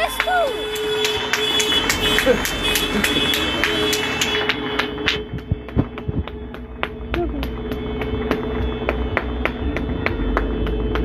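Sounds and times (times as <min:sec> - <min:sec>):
low traffic rumble: 0:00.0 - 0:11.0
rhythmic hand clapping: 0:00.0 - 0:11.0
steady droning tone: 0:00.0 - 0:11.0.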